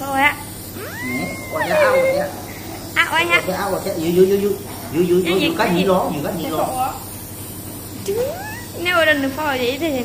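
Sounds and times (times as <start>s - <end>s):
toddler crying: 0.8s - 2.3s, 8.1s - 8.8s.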